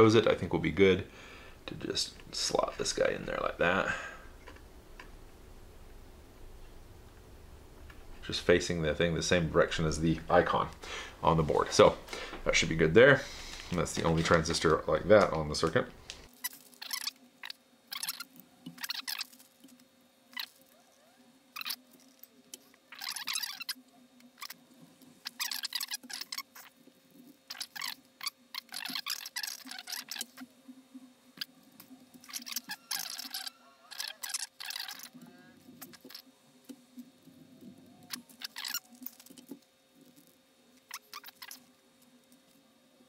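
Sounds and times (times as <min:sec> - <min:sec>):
faint steady hum: 0:00.0 - 0:43.0.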